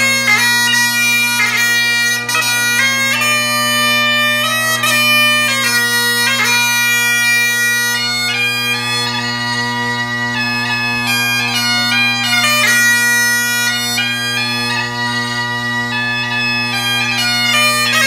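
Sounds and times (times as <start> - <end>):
bagpipe drones: 0.0 - 18.0
bagpipe melody: 0.0 - 18.0.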